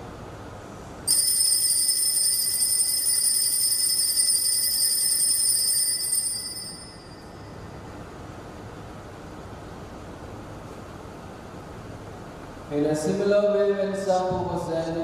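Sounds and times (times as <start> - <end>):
altar bells jingling: 1.1 - 7.4.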